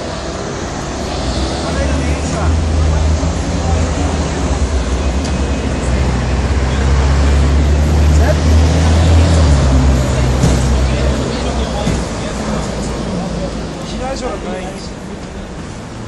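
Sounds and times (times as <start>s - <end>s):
diesel bus engine rumbling: 0.0s - 16.0s
voices murmuring: 0.0s - 16.0s.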